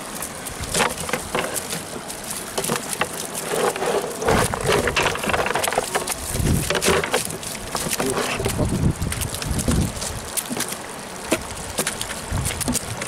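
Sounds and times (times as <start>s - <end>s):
net rustling: 0.0s - 13.0s.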